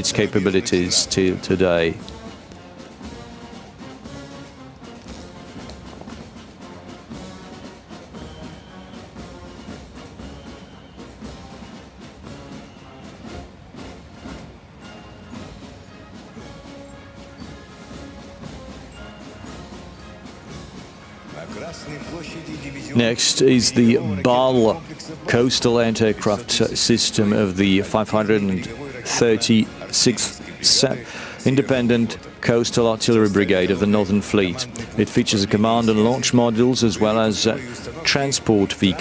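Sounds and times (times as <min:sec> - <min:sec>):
drumbeats: 0:00.0 - 0:39.0
military brass band playing a march: 0:00.0 - 0:39.0.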